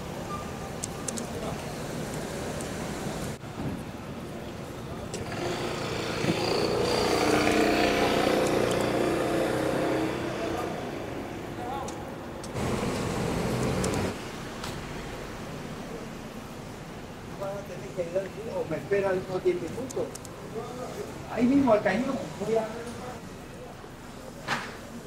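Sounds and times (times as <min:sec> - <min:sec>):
motor vehicle passing: 0:05.4 - 0:10.9, 0:12.6 - 0:14.2.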